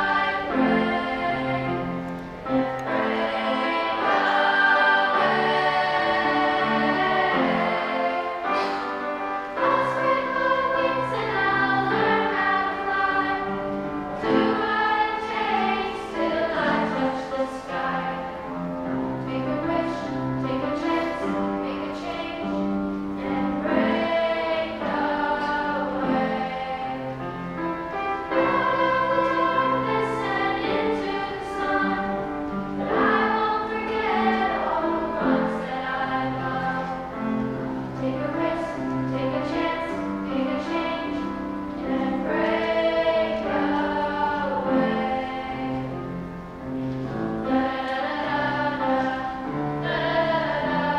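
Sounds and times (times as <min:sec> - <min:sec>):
choir of young voices singing: 0:00.0 - 0:50.9
instrumental accompaniment: 0:00.0 - 0:50.9.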